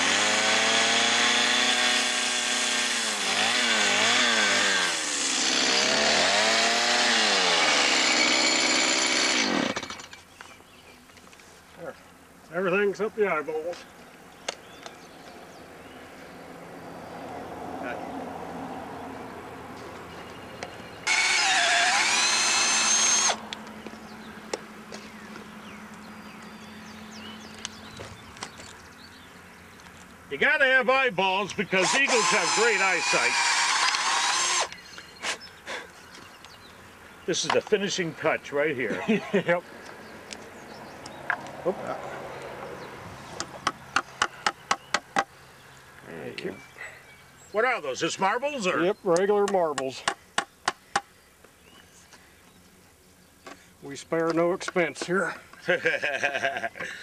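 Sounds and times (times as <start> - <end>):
power drill boring into wood: 0.0 - 10.1, 21.0 - 23.4, 31.8 - 34.8
sharp tapping on wood: 43.4 - 45.3, 49.1 - 51.1.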